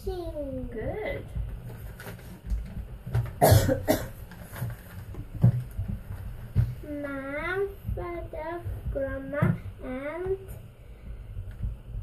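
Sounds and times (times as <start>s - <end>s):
person coughing: 3.4s - 4.2s.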